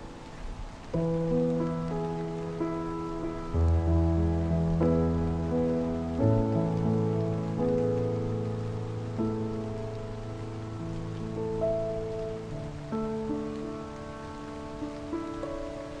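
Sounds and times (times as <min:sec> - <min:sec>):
calm piano improvisation: 0:00.0 - 0:16.0
steady rain: 0:00.0 - 0:16.0.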